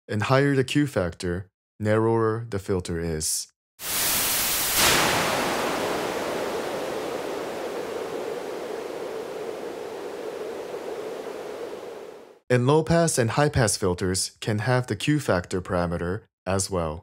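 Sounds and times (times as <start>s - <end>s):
filtered white noise hiss: 3.8s - 12.4s.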